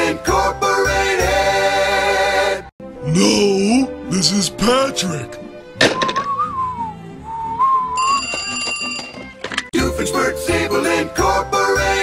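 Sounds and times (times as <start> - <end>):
cartoon character whistling: 6.0 - 8.0
telephone bell ringing: 8.0 - 9.4.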